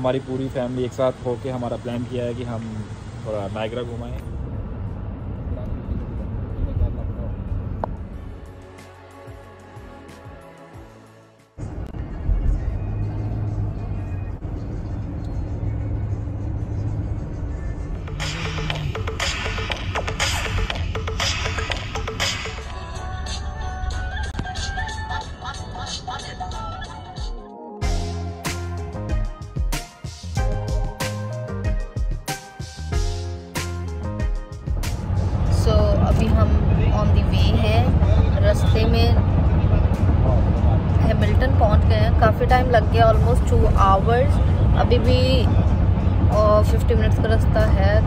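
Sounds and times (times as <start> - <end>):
road and engine rumble in car: 0.0 - 8.8, 11.6 - 27.0, 33.8 - 48.0
music with a beat: 17.9 - 35.3.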